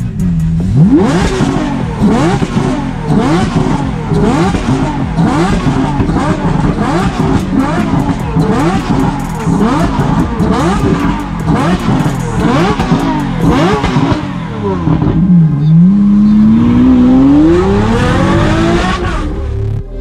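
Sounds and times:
sports car engine revving: 0:00.0 - 0:20.0.

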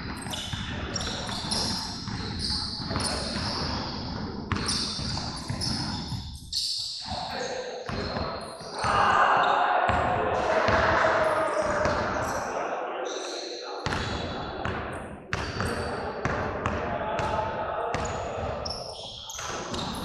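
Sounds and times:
voices: 0:06.6 - 0:20.0.

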